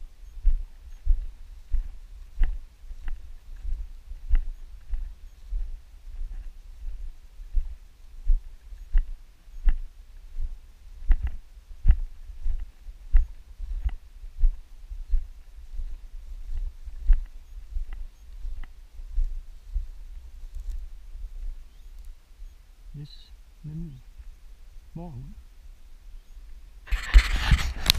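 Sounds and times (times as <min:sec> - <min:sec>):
footsteps through grass: 0:00.0 - 0:22.3.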